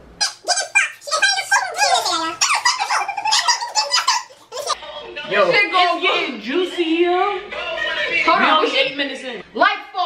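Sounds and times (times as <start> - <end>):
women squealing and laughing: 2.4 - 4.8.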